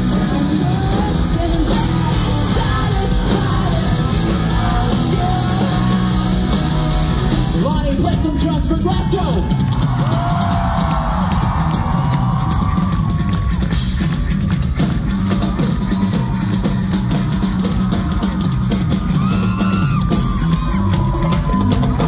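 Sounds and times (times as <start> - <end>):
hard-hit drum kit: 0.0 - 22.0
rock band playing live: 0.0 - 22.0.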